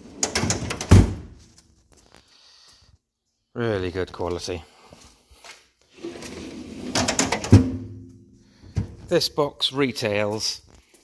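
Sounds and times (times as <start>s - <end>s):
metal drawer rolling shut: 0.0s - 1.3s, 6.0s - 8.0s
metal cabinet ringing: 6.9s - 8.1s
drawer thud: 7.0s - 8.0s.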